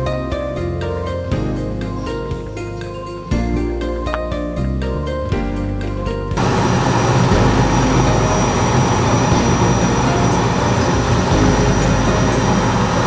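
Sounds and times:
tow plane engine: 6.4s - 13.0s
wheel rumbling over snow: 6.4s - 13.0s.

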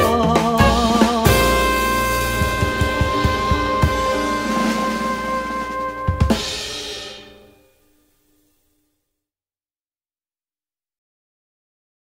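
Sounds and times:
drum kit hits: 0.0s - 7.6s
jazz band closing chord: 0.0s - 7.7s
cymbal crash: 1.3s - 7.7s.

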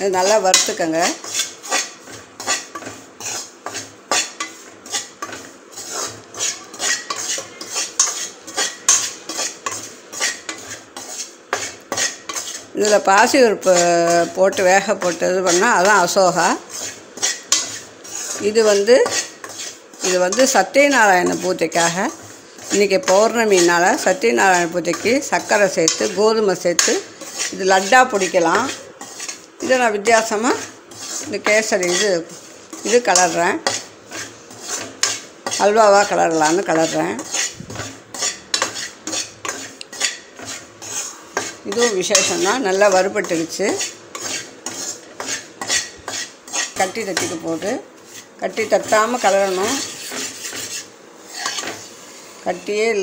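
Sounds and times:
metal ladle scraping a metal pan: 0.1s - 52.8s.

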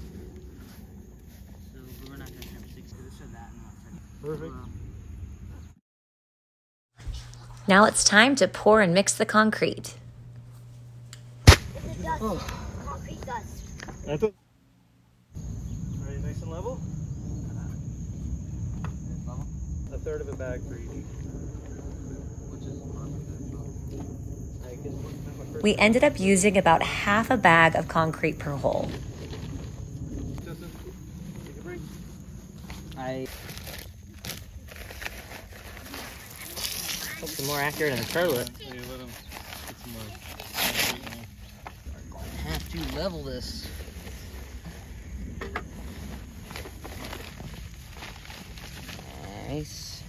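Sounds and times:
bag dropped on grass thud: 11.4s - 11.9s
paper bag rustling: 33.3s - 44.5s, 45.8s - 49.4s.

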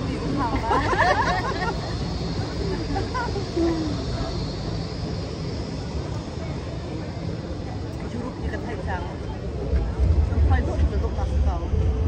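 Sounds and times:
voices talking: 0.0s - 11.8s
city street rumble: 0.0s - 12.0s.

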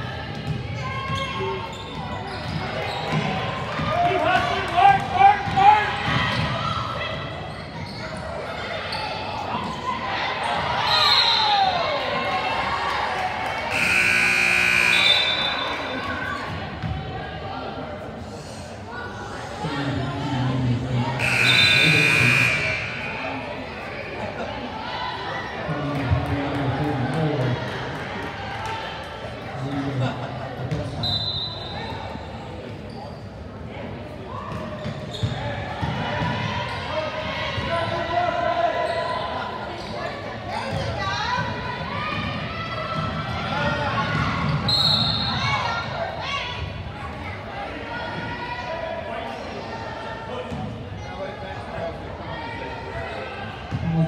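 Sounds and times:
crowd chatter: 0.0s - 54.0s
spectators talking: 0.0s - 54.0s
loud high signal tone: 13.8s - 15.6s.

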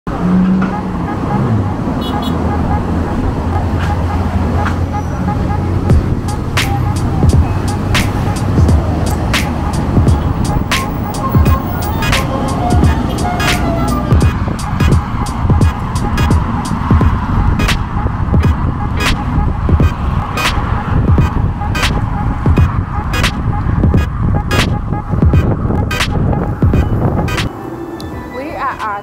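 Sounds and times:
car engine passing: 0.1s - 29.0s
music with sharp beat: 5.5s - 27.5s.

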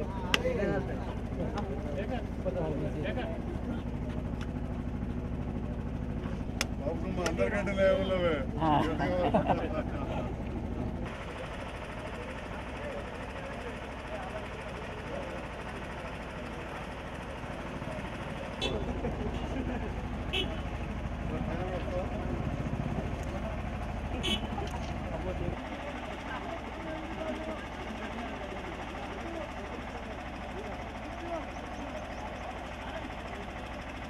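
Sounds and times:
steady low rumble: 0.0s - 11.1s
crowd chatter: 0.0s - 34.0s.

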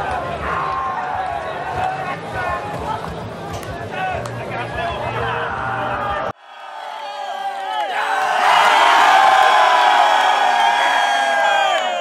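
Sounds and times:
group cheering and shouting: 0.0s - 2.2s, 5.0s - 12.0s.

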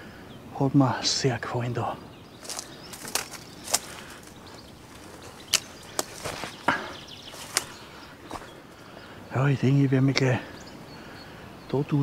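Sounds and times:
rustle through dry reeds: 2.2s - 9.1s
dry twigs snapping underfoot: 2.4s - 8.6s.

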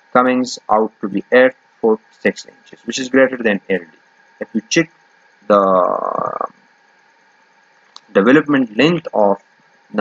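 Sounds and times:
man's drawn-out hesitation: 0.2s - 6.6s.

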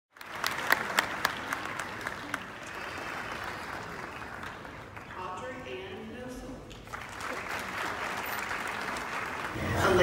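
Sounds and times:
audience applauding: 0.1s - 5.2s, 6.8s - 10.0s.

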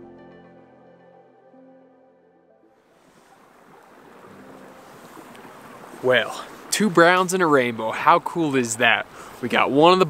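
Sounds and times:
soft background music: 0.0s - 5.8s
stream water running: 2.8s - 10.0s.

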